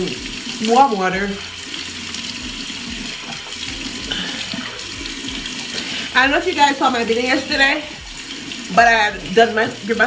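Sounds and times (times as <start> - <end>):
sink tap running: 0.0 - 10.0.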